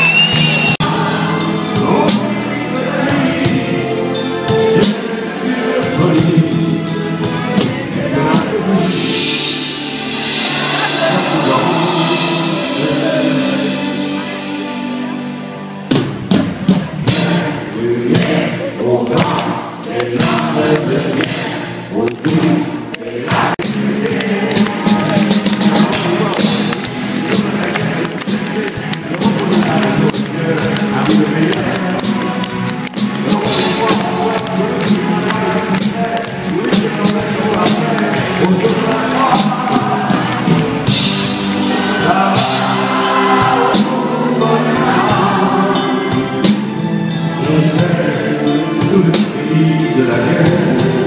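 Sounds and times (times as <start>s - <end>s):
audience clapping along: 0.0s - 1.0s, 19.0s - 45.3s
live band music: 0.0s - 51.0s
driving drum beat: 15.9s - 51.0s.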